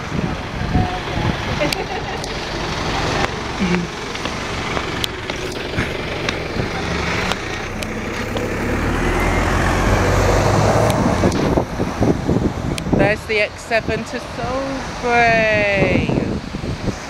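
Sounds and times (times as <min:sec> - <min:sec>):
bus engine driving away: 0:00.0 - 0:17.0
road noise: 0:00.0 - 0:17.0.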